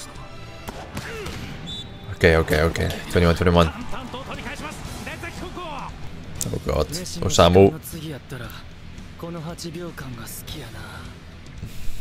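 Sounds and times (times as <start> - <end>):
anime soundtrack music: 0.0 - 11.8.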